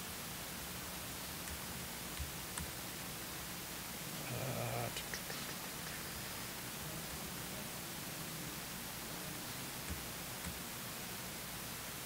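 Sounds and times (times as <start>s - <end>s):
faint steady hiss: 0.0s - 12.0s
person murmuring: 4.1s - 9.6s.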